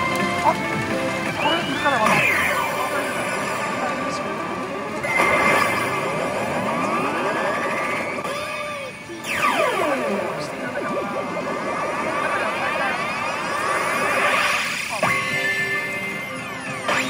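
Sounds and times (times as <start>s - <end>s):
pachinko machine electronic music: 0.0s - 3.8s, 4.4s - 17.0s
rising electronic sweeps: 5.0s - 17.0s.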